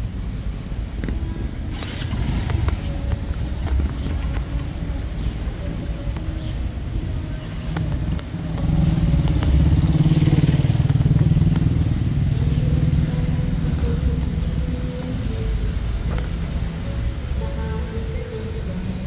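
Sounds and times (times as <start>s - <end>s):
vehicle engine running: 0.0s - 18.3s.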